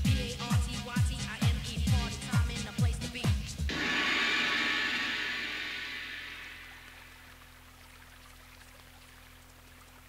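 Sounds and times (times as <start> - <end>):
hissing noise in house music: 3.4 - 7.5.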